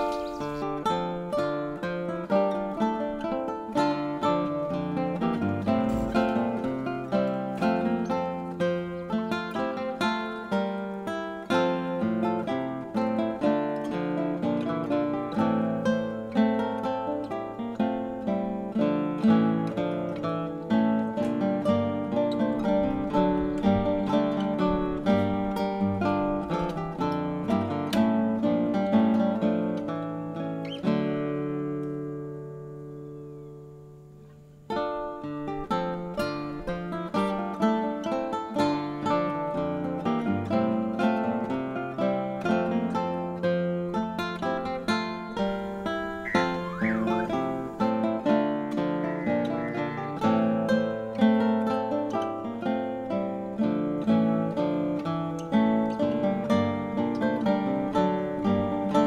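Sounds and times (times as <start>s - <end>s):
acoustic guitar plucking: 0.0s - 59.0s.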